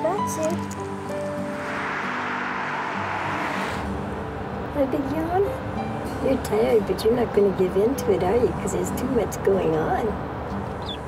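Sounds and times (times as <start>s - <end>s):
car passing: 0.8s - 10.7s.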